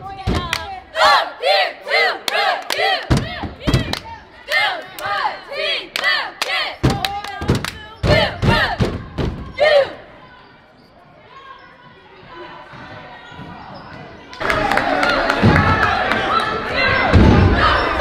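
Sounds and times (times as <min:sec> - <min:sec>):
girls shouting a cheer: 0:00.0 - 0:10.5
crowd chatter: 0:00.0 - 0:18.0
stomps and claps: 0:00.3 - 0:00.8, 0:02.2 - 0:05.2, 0:05.9 - 0:09.6, 0:14.3 - 0:16.5.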